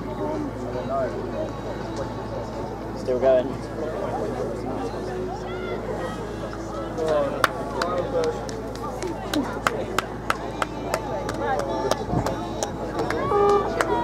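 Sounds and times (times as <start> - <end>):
people talking and calling: 0.0 - 14.0
hand-clapping: 7.4 - 14.0.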